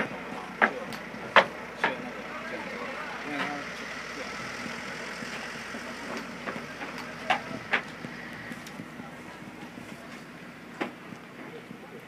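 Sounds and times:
boat engine running: 0:00.0 - 0:12.0
faint voices: 0:00.0 - 0:12.0.

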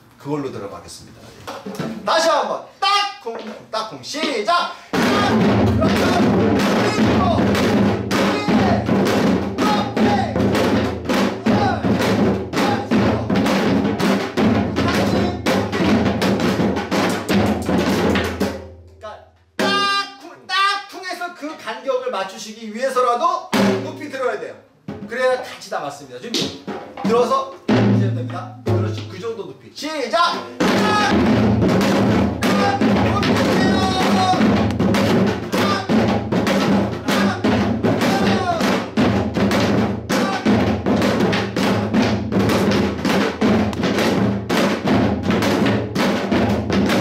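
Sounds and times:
man's voice: 0:01.9 - 0:10.7, 0:11.4 - 0:13.7, 0:14.7 - 0:16.1, 0:19.0 - 0:31.4, 0:32.4 - 0:34.7, 0:35.4 - 0:39.0, 0:40.1 - 0:40.8
hourglass drum played fast: 0:05.0 - 0:18.1, 0:30.6 - 0:47.0.

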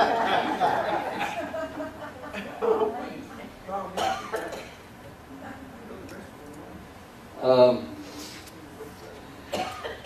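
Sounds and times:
person coughing: 0:09.5 - 0:10.0.

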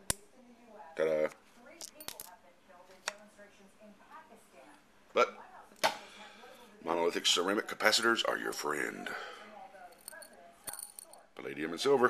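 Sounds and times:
small capacitors clinking in glass jar: 0:01.8 - 0:02.4, 0:09.9 - 0:11.2.

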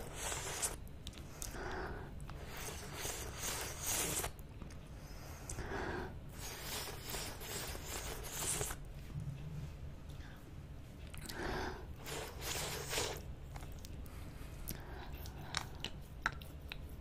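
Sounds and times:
wet licking and sucking mouth sounds: 0:00.0 - 0:01.6, 0:02.2 - 0:04.4, 0:06.3 - 0:08.8, 0:12.0 - 0:14.0, 0:14.7 - 0:17.0.

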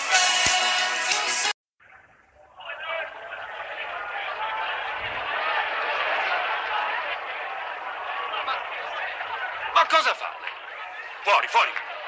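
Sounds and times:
crowd chatter: 0:02.3 - 0:12.0.

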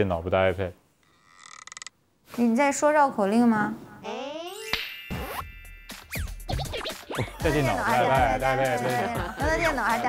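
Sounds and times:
background music: 0:04.2 - 0:10.0
record scratch effects: 0:06.1 - 0:08.0.

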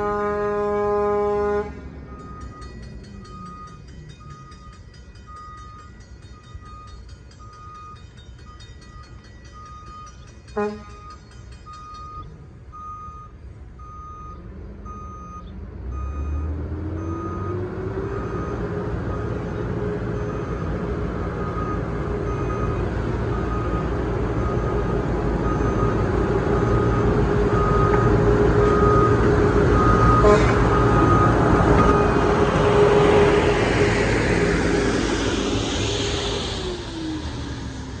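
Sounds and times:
truck diesel engine running: 0:17.2 - 0:38.0
backup alarm beeping: 0:23.4 - 0:32.3.

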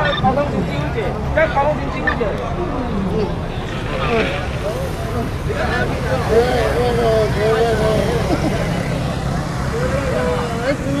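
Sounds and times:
low rumble of street noise: 0:00.0 - 0:11.0.

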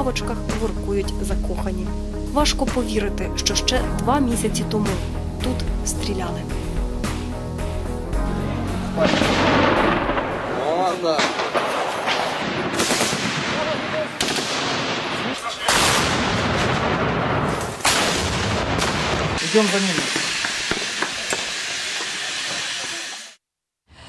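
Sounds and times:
gunfire: 0:09.0 - 0:19.4.

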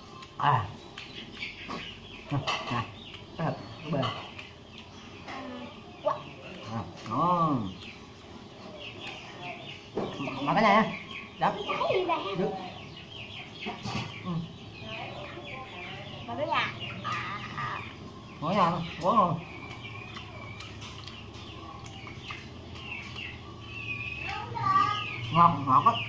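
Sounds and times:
chickens clucking and calling: 0:00.0 - 0:26.0.

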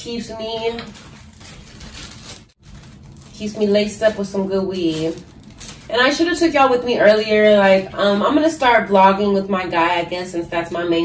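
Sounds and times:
plastic bag rustling and crinkling: 0:00.0 - 0:06.5.

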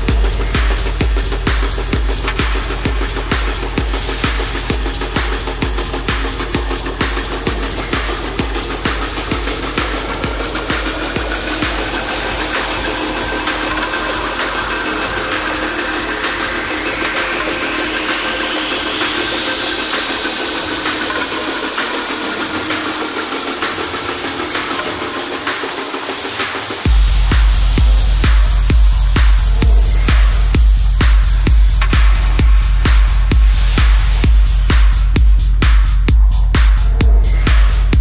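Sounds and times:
rising synth sweep: 0:00.0 - 0:35.4
kick drum: 0:00.0 - 0:38.0
steady synth tones: 0:00.0 - 0:38.0
ticking hi-hats: 0:00.0 - 0:38.0.

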